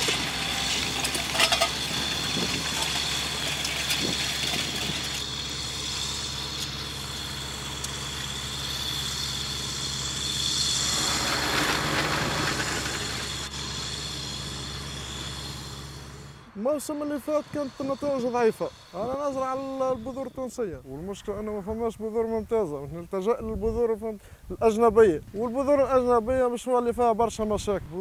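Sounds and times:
tractor diesel engine running: 0.0 - 23.9.

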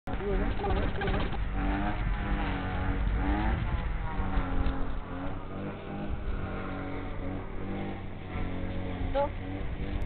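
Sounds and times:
steady low rumble: 0.1 - 10.0.

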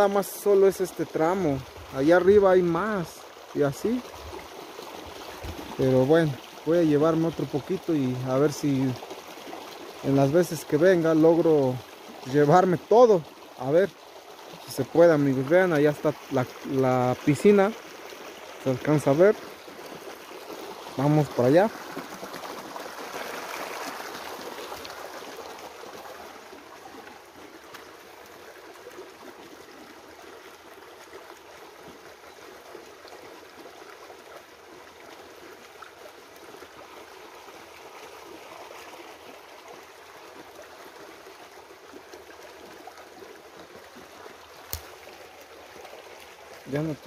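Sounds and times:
river running over stones: 0.0 - 47.0.

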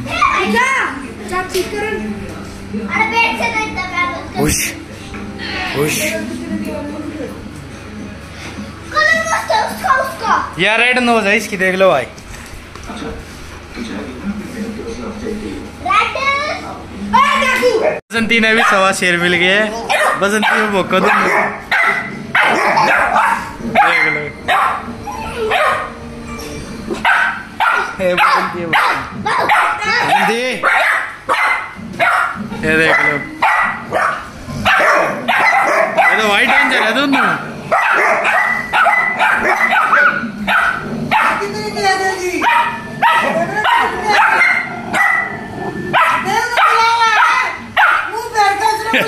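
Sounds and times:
puppy barking: 18.6 - 19.0, 19.8 - 26.0, 26.9 - 41.5, 42.4 - 48.2.

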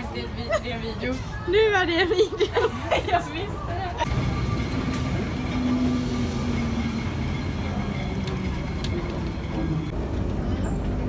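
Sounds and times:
tram wheels rumbling on rails: 3.8 - 11.0.

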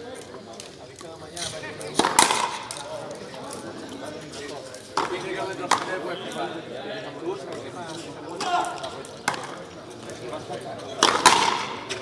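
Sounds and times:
rubber ball cracks off rackets and wall: 11.0 - 12.0.

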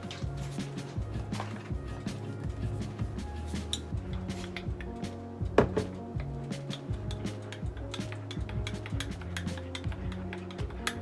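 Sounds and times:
background music with low notes: 0.0 - 11.0.

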